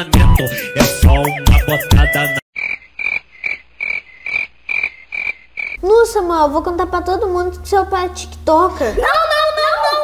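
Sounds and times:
hip-hop music: 0.0 - 2.4
high croaking chirps: 2.5 - 5.8.

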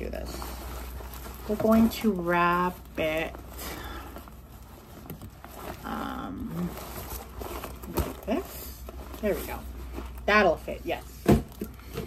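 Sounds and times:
garment rustling: 0.0 - 12.0
person humming um: 5.8 - 6.7.

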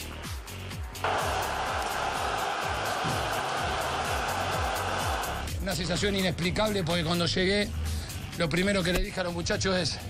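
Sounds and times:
background music with thumping beat: 0.0 - 10.0
stadium crowd cheering: 0.4 - 5.5.

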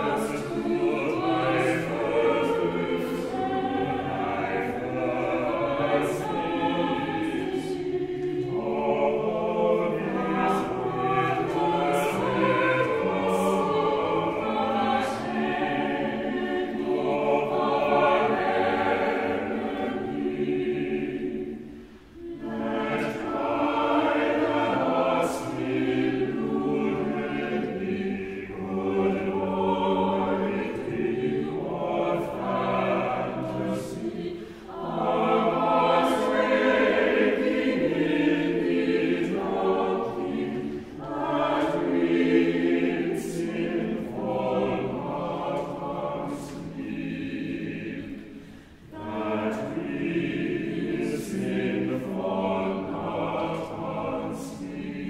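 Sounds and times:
church choir singing: 0.0 - 55.0.

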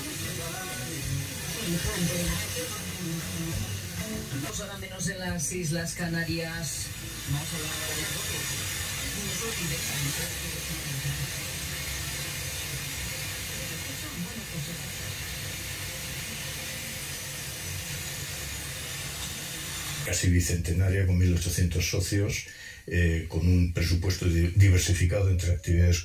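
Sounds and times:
radio static hiss: 0.0 - 26.0.

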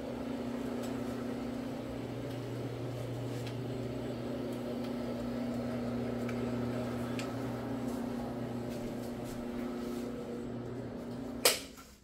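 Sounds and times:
floor machine scrubbing carpet: 0.0 - 11.9.

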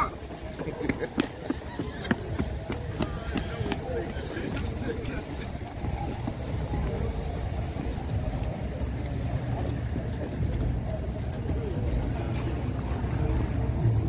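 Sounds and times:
faint voices: 0.0 - 14.0
footsteps on concrete: 0.2 - 13.8.

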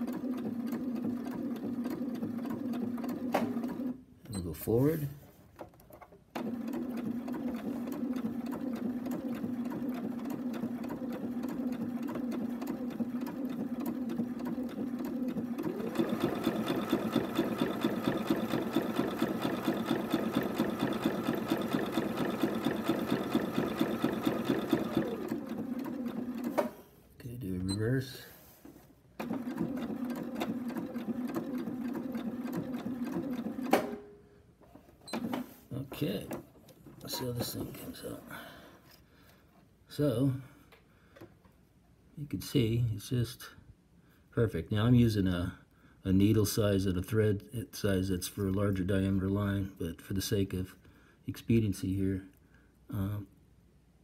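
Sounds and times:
sewing machine stitching: 0.0 - 4.0, 5.6 - 26.9, 29.2 - 34.0, 35.0 - 38.2.

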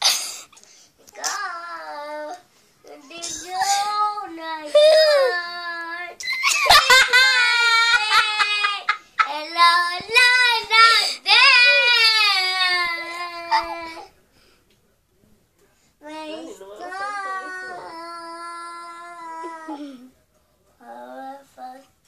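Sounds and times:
girl singing: 9.3 - 13.8.

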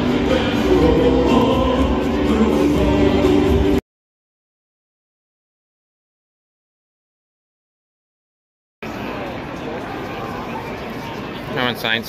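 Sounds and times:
crowd murmur: 8.8 - 12.0.

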